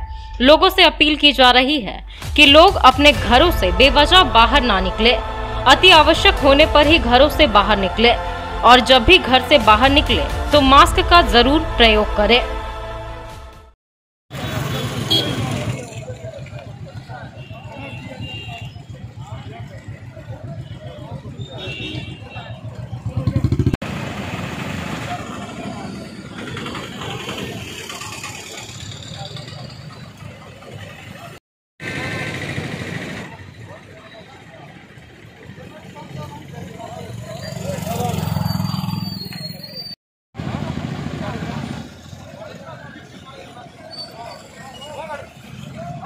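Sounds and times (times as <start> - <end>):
people talking: 0.4 - 12.5, 14.7 - 23.6, 25.0 - 31.4, 32.1 - 38.4, 40.5 - 46.0
motorcycle and car engines: 14.3 - 21.6, 22.4 - 46.0.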